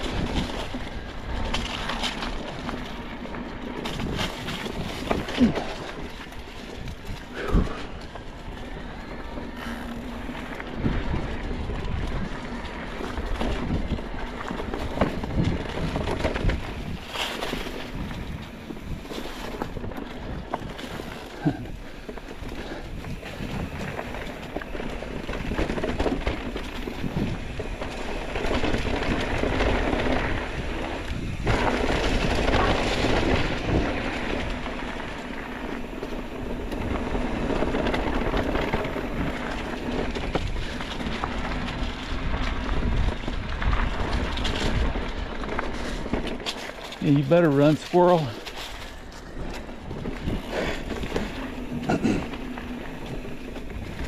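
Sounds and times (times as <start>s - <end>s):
bike knocks and rattles: 0.0s - 54.0s
tyres rolling through dry leaves: 0.0s - 54.0s
wind on microphone: 8.7s - 46.3s, 48.8s - 54.0s.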